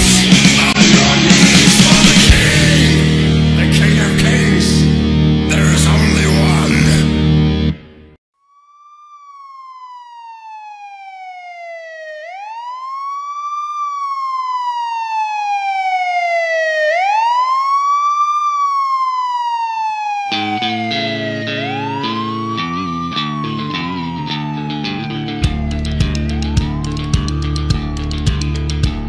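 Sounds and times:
heavy rock band with drums: 0.0 - 6.1
siren-like wail: 8.5 - 29.0.

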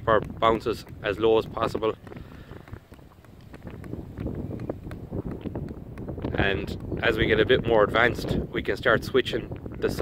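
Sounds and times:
ball tapping on stick: 0.0 - 8.4
wind rumbling on microphone: 0.0 - 10.0.

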